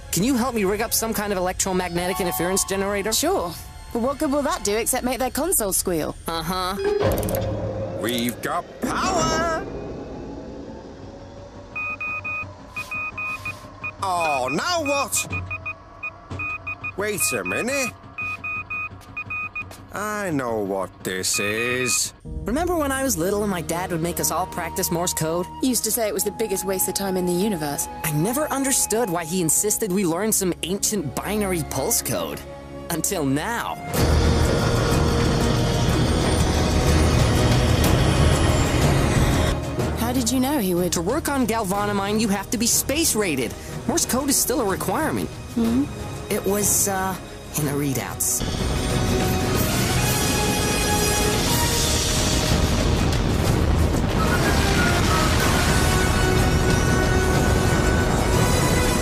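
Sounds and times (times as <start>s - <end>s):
dramatic orchestral music: 0.0s - 10.9s, 11.6s - 59.0s
cartoon thrusters rumbling: 7.5s - 12.8s
morse code beeps: 11.8s - 19.8s, 21.2s - 22.2s.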